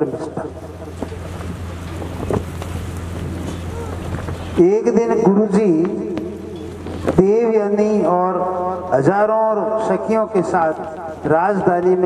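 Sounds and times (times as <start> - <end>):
low hum: 0.0 - 11.4
wind rushing on microphone: 1.4 - 4.6.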